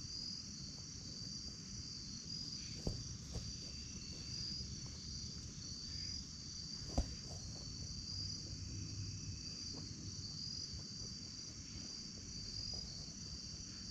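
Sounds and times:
insect chorus trilling: 0.0s - 13.9s.

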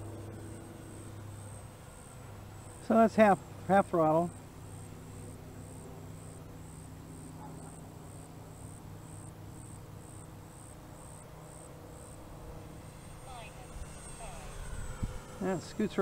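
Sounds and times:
insect chirping: 0.0s - 16.0s
model plane motor humming: 0.0s - 16.0s.

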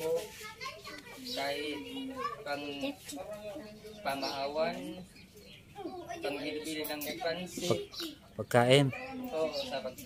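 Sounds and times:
young voice talking quietly: 0.0s - 10.0s.

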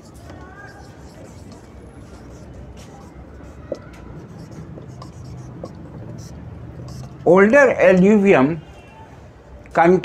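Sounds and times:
marker squeaks: 0.0s - 7.3s
marker writing on whiteboard: 0.0s - 8.2s.

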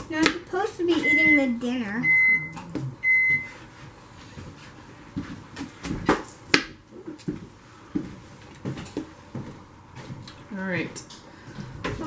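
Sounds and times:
electronic beep: 1.0s - 3.5s.

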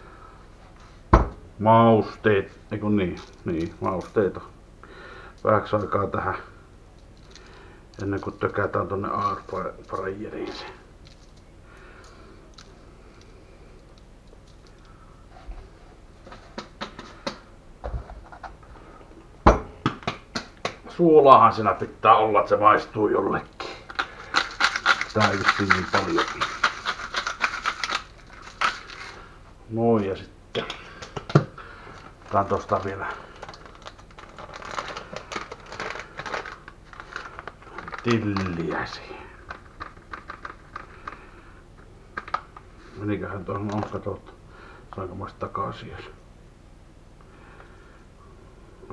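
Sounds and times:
kitchen items rustling and clicking: 23.6s - 29.2s, 30.6s - 41.3s.

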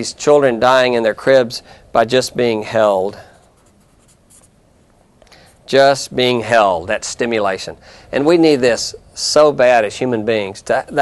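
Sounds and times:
faint scratching: 3.1s - 4.6s.

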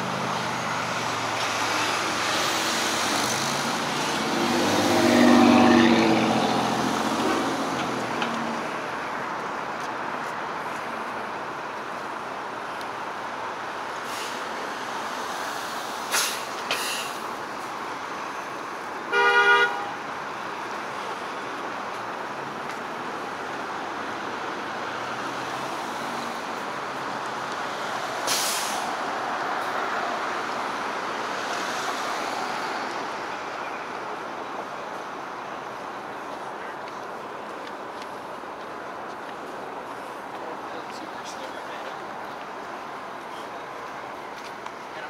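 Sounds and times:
vehicle passing: 0.0s - 9.8s
city street traffic: 0.0s - 45.0s
car horn honk: 19.1s - 20.0s.

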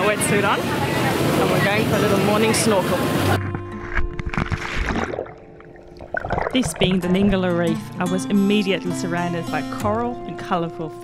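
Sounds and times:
splash into water: 3.2s - 7.0s
underwater bubbles churning: 3.4s - 7.5s
music with held notes: 6.8s - 11.0s.

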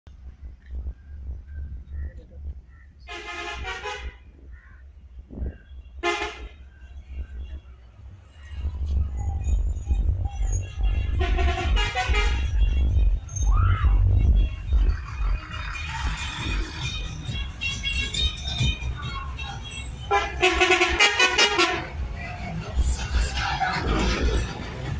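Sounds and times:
diesel bus engine rumble: 0.1s - 24.9s
bus horn blasts: 3.1s - 4.2s, 6.0s - 6.6s, 10.6s - 13.1s, 19.5s - 22.0s.

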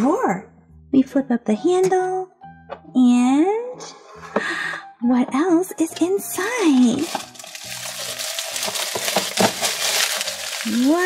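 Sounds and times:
soft background music: 0.0s - 11.0s
tissue paper rustling: 6.8s - 11.0s.

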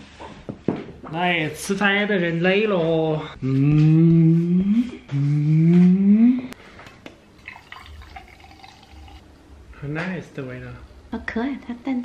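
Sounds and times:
drink pouring into a glass: 7.4s - 9.2s.

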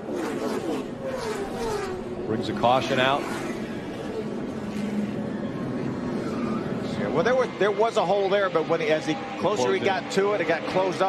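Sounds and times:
race truck engines passing: 0.0s - 11.0s.

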